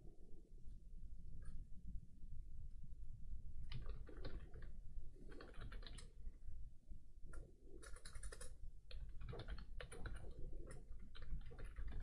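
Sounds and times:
computer keyboard typing: 0:03.7 - 0:04.7, 0:05.3 - 0:06.1, 0:07.3 - 0:12.0.

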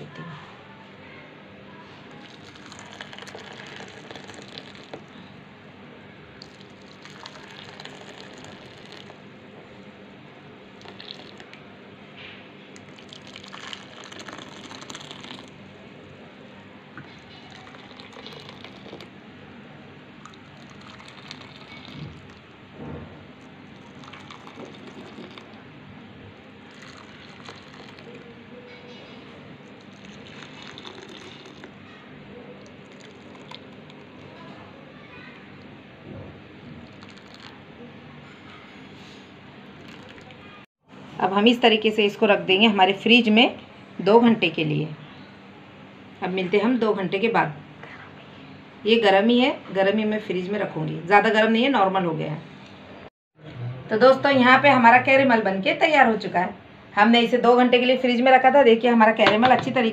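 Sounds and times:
liquid trickling into bowls: 0:02.1 - 0:05.3, 0:06.4 - 0:09.2, 0:10.7 - 0:11.6, 0:12.7 - 0:15.6, 0:17.0 - 0:19.2, 0:20.2 - 0:22.6, 0:23.3 - 0:25.6, 0:26.6 - 0:28.5, 0:29.6 - 0:31.8, 0:32.6 - 0:34.4, 0:36.7 - 0:37.6, 0:39.6 - 0:40.5.

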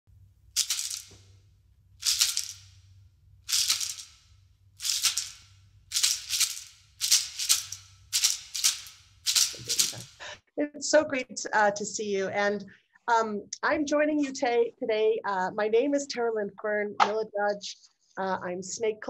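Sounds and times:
hand rattle shaken: 0:00.6 - 0:01.1, 0:02.0 - 0:02.6, 0:03.5 - 0:04.1, 0:04.8 - 0:10.2.

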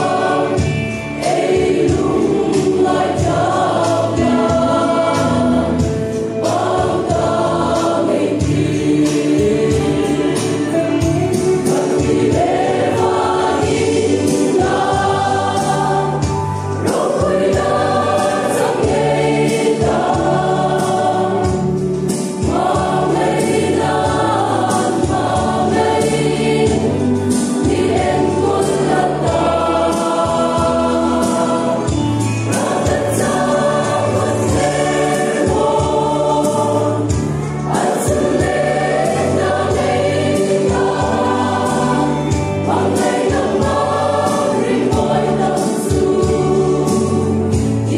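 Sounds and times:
choir singing a hymn: 0:00.0 - 0:47.9.

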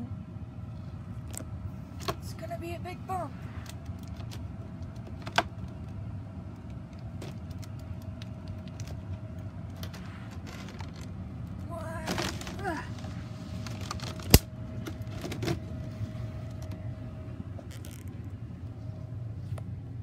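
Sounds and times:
steady background hum: 0:00.0 - 0:20.0.

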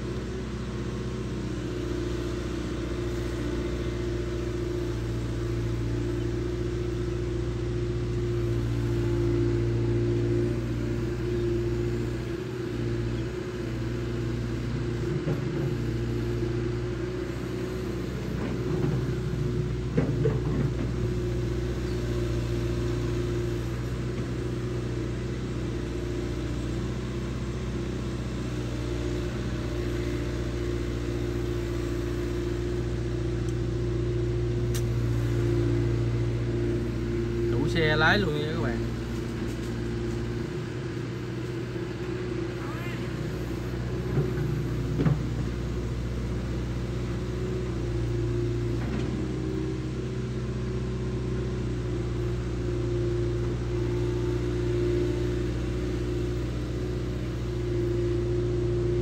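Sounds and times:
excavator diesel engine running: 0:00.0 - 0:59.0
excavator arm and bucket clatter: 0:18.3 - 0:22.0, 0:43.0 - 0:46.5.

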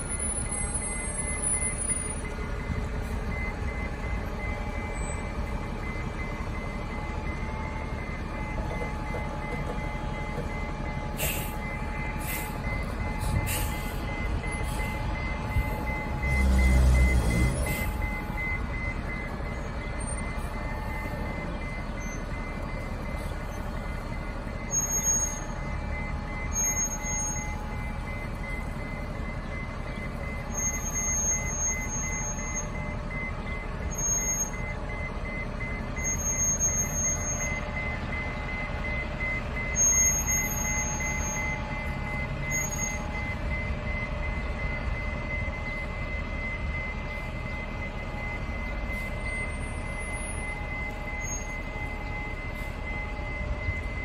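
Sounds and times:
back-up alarm beeping: 0:00.0 - 0:54.0
bus engine running: 0:00.0 - 0:54.0.

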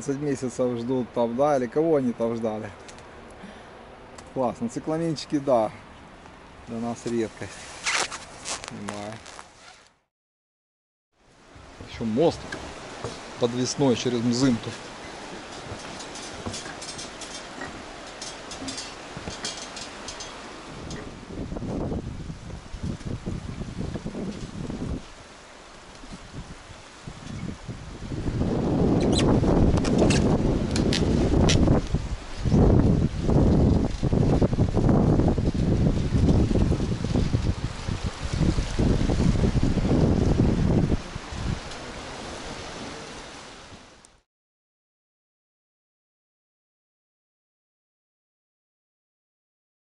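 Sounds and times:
river rushing: 0:11.3 - 0:44.0
wind buffeting microphone: 0:11.5 - 0:43.8.

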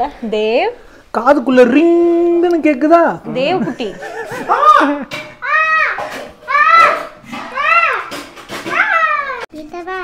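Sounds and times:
child squealing: 0:04.5 - 0:09.5
child talking: 0:05.4 - 0:08.1, 0:08.7 - 0:10.0.

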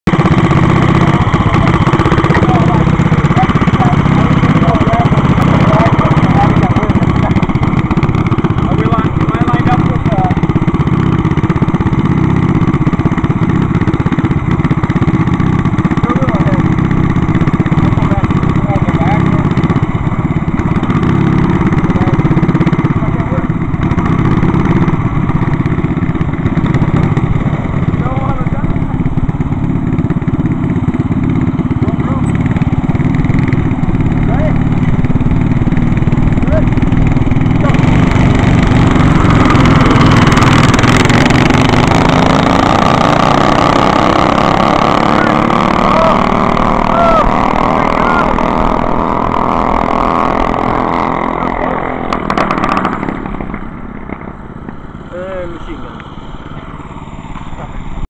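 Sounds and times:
go-kart engines running: 0:00.0 - 0:58.0.

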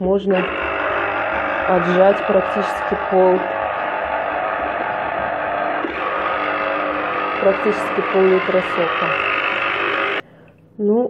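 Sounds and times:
electric juicer motor running: 0:00.3 - 0:10.3.

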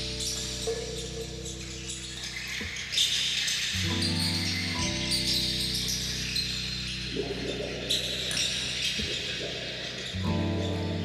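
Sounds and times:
live guitar: 0:03.7 - 0:11.0.

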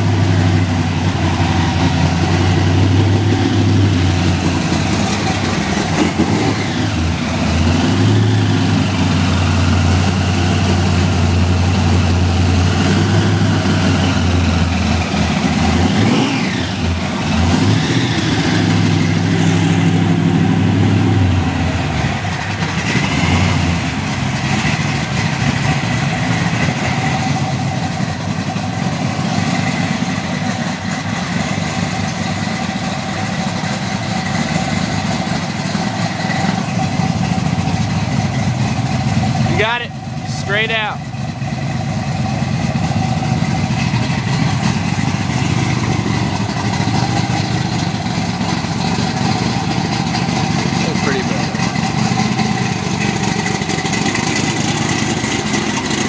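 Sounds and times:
car engine idling: 0:00.0 - 0:56.0.

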